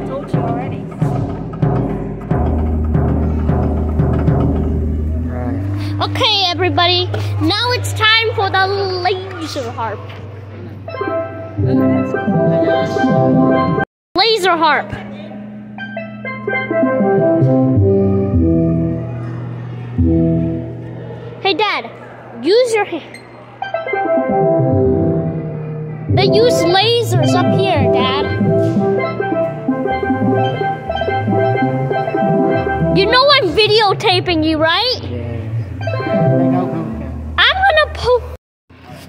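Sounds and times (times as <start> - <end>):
large drum hits: 0.0 - 7.5
low drone: 1.9 - 9.1, 24.4 - 38.4
ringing synthesized tones: 15.0 - 20.9, 23.1 - 34.2, 35.4 - 37.6.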